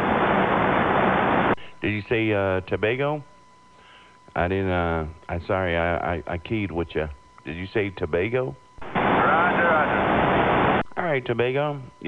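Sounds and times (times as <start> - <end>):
radio static hiss: 0.0 - 12.0
faint voice over radio: 9.1 - 10.1.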